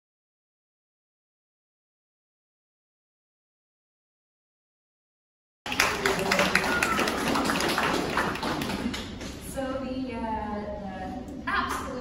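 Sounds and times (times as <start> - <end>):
audience clapping: 5.7 - 9.4.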